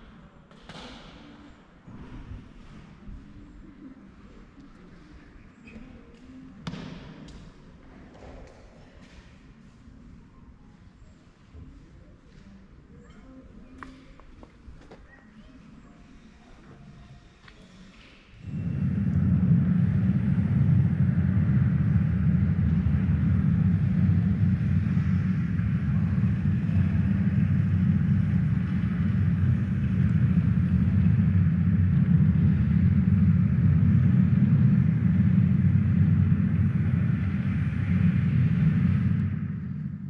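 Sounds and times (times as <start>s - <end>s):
dense low rumble: 18.4s - 40.0s.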